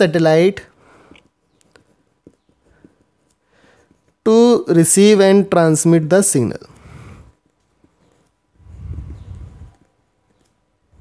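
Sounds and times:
marker pen writing on paper: 1.2 - 4.2.

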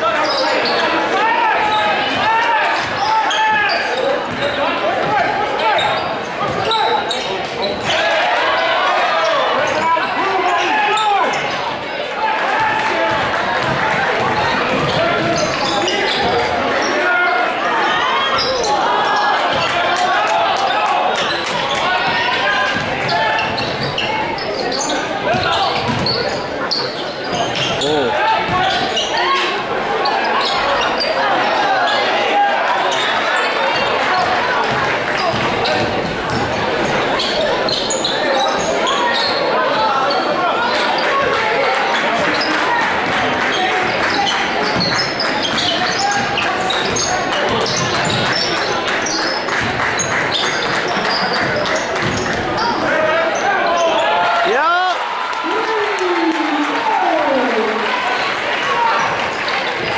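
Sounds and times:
spectators chattering: 0.0 - 59.9
basketball bouncing on hardwood: 25.3 - 26.0.

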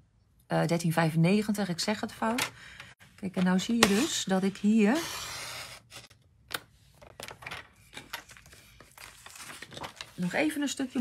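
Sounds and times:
paper trimmer blade scraping: 4.9 - 6.1
paper taps and rustles: 6.5 - 10.4.

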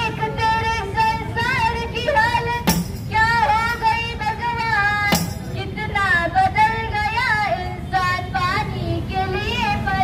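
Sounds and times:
girl singing into a microphone: 0.0 - 10.0.

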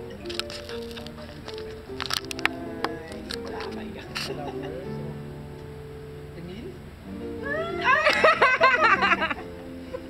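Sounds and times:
background music: 0.0 - 10.0
woman squealing and laughing: 7.4 - 9.4.

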